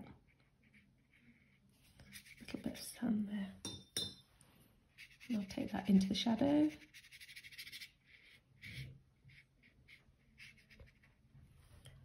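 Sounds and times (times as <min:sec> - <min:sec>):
paintbrush strokes on paper: 0:00.3 - 0:03.0, 0:04.9 - 0:11.9.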